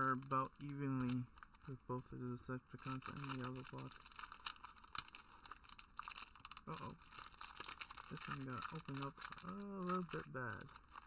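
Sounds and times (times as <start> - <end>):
foil pack crinkling and tearing: 0.0 - 1.8, 2.8 - 11.0.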